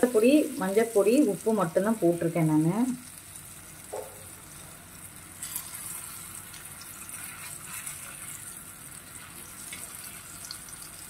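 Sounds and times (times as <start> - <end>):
slices sizzling in oil: 0.0 - 11.0.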